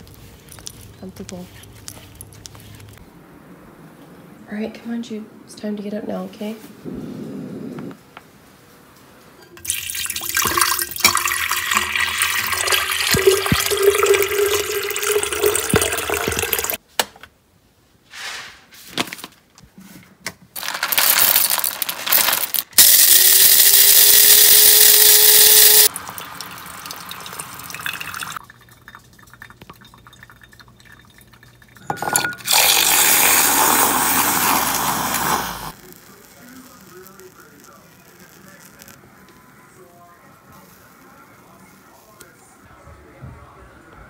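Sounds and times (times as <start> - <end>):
liquid pouring: 9.6 - 16.8, 20.6 - 36.2
appliance humming and hissing: 22.7 - 28.4, 32.0 - 42.4.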